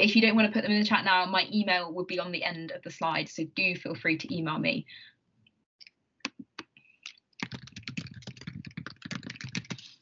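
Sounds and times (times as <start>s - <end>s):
typing on a computer keyboard: 7.4s - 9.9s.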